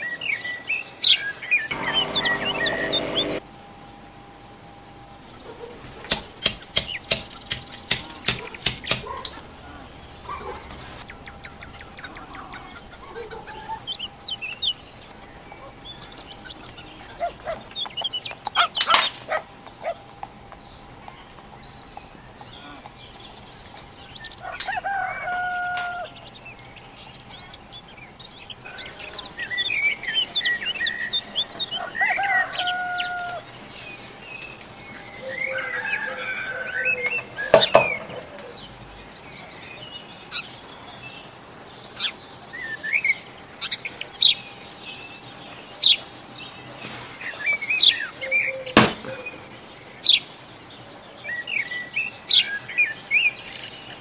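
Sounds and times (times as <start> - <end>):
sharp clicks: 6.1 - 9.6.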